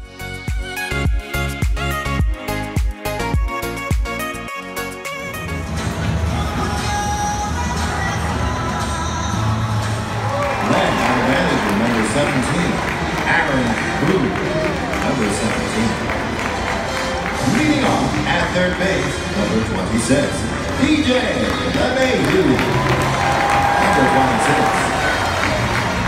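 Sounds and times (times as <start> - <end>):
music playing: 0.0 - 26.0
announcer over public address: 23.7 - 25.0.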